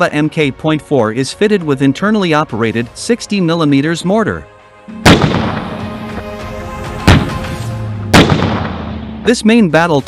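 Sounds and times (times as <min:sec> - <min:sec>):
background music: 0:00.0 - 0:10.0
tank gun firing: 0:05.0 - 0:06.0, 0:07.0 - 0:07.5, 0:08.1 - 0:09.2.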